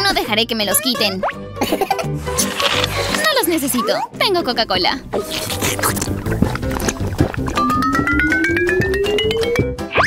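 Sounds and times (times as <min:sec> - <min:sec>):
background music: 0:00.0 - 0:10.0
tone climbing in small steps: 0:07.6 - 0:09.8.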